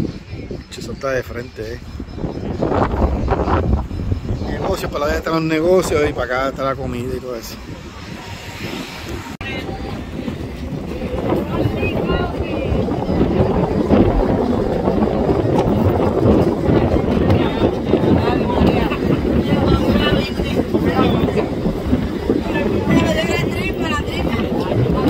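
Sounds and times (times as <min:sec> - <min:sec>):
faint voices: 0:00.0 - 0:25.0
wind buffeting microphone: 0:00.0 - 0:25.0.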